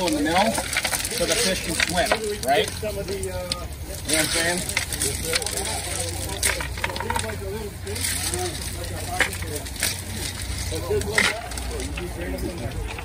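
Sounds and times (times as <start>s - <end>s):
gravel clacking: 0.0s - 13.0s
indistinct voices: 0.0s - 13.0s.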